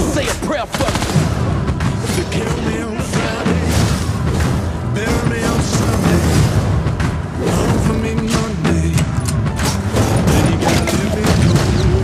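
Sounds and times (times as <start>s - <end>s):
action trailer music with booming hits: 0.0s - 12.0s.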